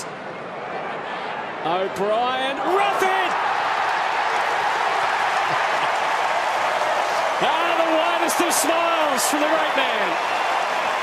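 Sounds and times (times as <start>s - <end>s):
stadium crowd cheering and applauding: 0.0s - 11.0s.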